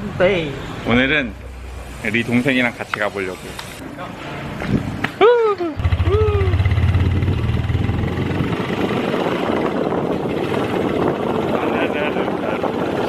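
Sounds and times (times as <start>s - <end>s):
motorbike engine drone: 5.8s - 13.0s
wind on microphone: 5.9s - 13.0s.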